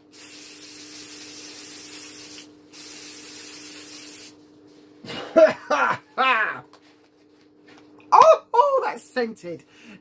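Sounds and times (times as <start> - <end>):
aerosol hairspray hissing: 0.1 - 4.4.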